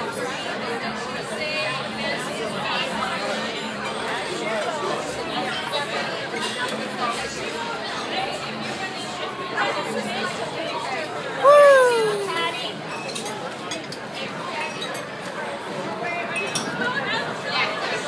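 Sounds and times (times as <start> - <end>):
diners chatter: 6.3 - 18.0.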